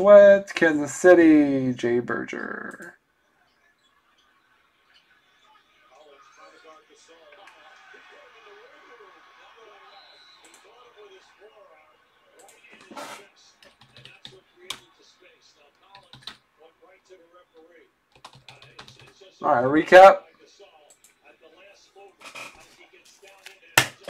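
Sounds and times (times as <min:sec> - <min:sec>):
faint background speech: 0:02.8 - 0:19.5, 0:20.2 - 0:24.0
computer keyboard typing: 0:13.6 - 0:14.8, 0:15.9 - 0:16.4, 0:18.1 - 0:19.2.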